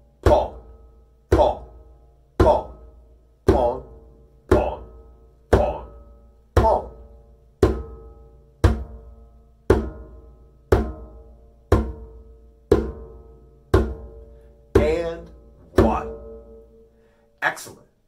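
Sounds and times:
djembe bass strokes: 0:00.0 - 0:16.8.

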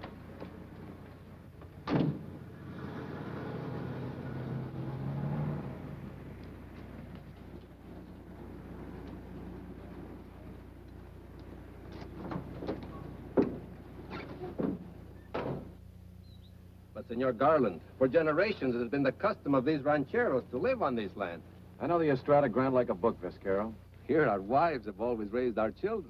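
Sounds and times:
car door shutting: 0:01.8 - 0:02.4
car engine pulling away: 0:01.8 - 0:13.0.

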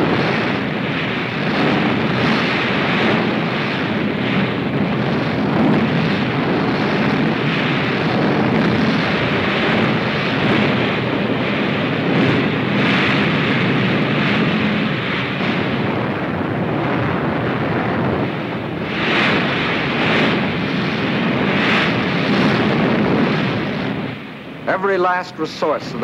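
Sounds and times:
rockets firing with rushing hiss: 0:00.0 - 0:26.0.

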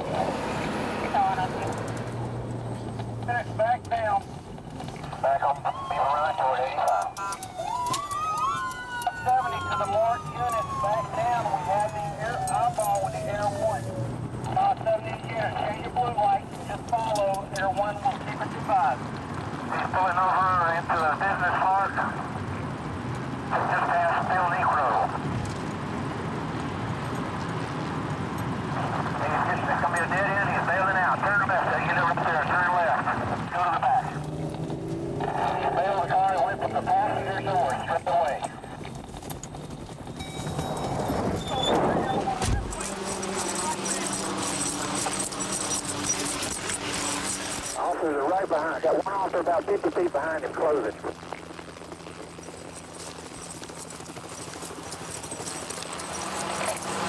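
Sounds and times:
police sirens yelping: 0:00.0 - 0:18.8, 0:28.7 - 0:51.1
vehicle rumble: 0:00.0 - 0:57.0.

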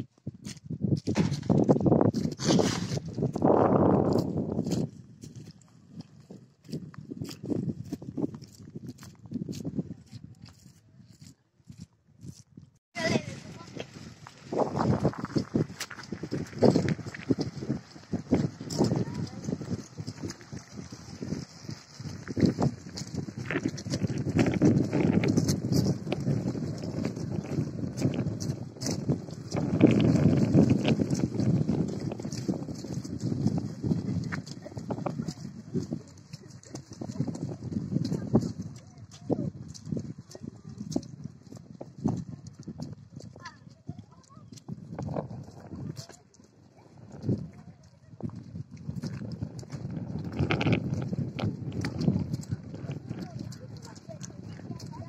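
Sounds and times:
footsteps on muddy dirt road: 0:00.0 - 0:55.0
wind rumbling on microphone: 0:00.0 - 0:55.0
background voices: 0:49.3 - 0:55.0.

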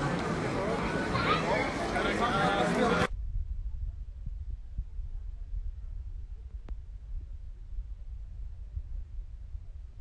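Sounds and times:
low uneven rumble: 0:03.0 - 0:10.0.

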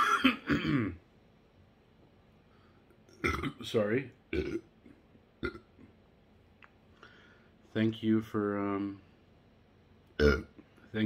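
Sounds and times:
deep burp: 0:00.0 - 0:01.0, 0:03.2 - 0:03.6, 0:04.3 - 0:04.7, 0:05.4 - 0:05.9, 0:10.2 - 0:10.5.

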